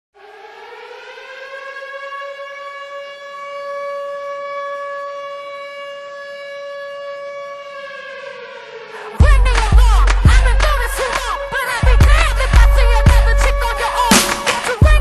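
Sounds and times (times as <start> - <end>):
siren winding up: 8.2 - 14.9.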